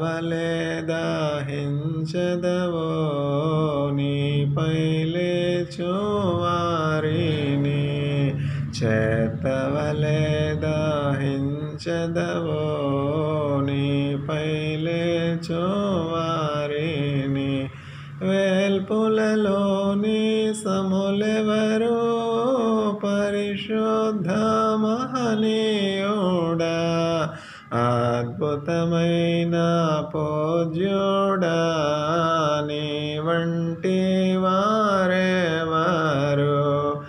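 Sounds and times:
person singing chant-like song: 0.0s - 37.0s.

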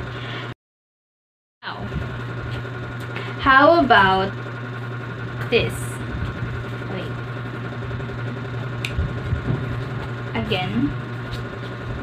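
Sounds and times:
steady low hum: 1.6s - 12.0s.

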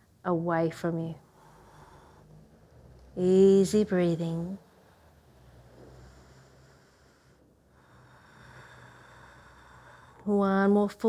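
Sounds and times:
faint slow breath: 1.2s - 3.2s, 4.6s - 10.3s.

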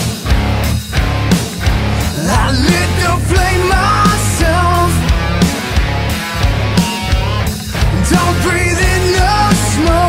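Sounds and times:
hard rock music with electric guitar: 0.0s - 10.0s.

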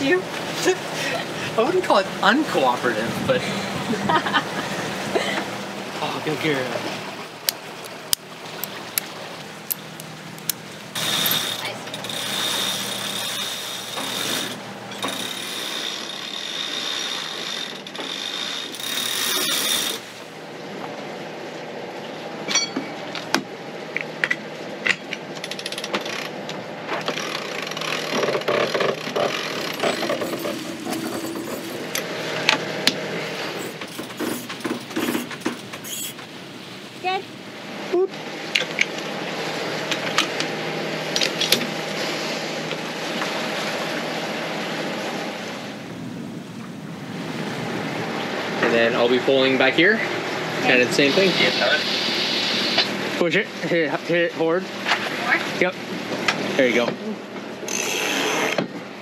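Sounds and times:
boat engine droning: 0.0s - 59.0s
winches clicking and knocking: 10.4s - 20.0s, 27.0s - 32.6s, 33.6s - 36.2s.

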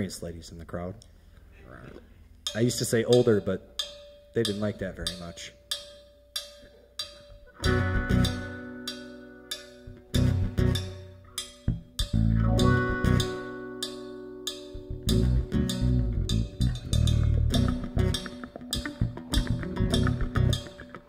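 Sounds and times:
sharp percussion taps: 2.5s - 21.0s
acoustic band playing: 6.6s - 21.0s
acoustic guitar chords ringing: 7.2s - 21.0s.

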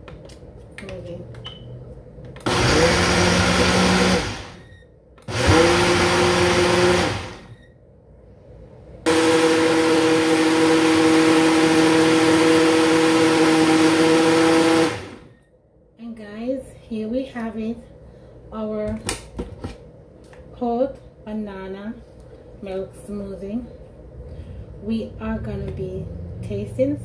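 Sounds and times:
blender motor whining: 2.4s - 4.7s, 5.3s - 7.5s, 9.1s - 15.3s.

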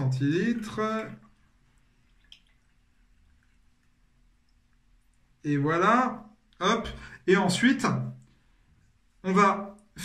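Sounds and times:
faint juice drips: 0.6s - 5.4s.

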